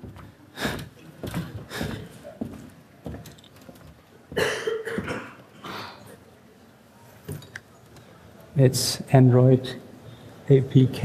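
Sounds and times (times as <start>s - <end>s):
person coughing: 4.3s - 6.1s.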